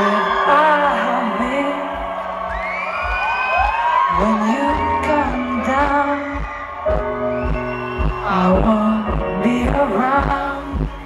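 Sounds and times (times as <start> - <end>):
person singing: 0.0 - 2.6, 4.1 - 11.0.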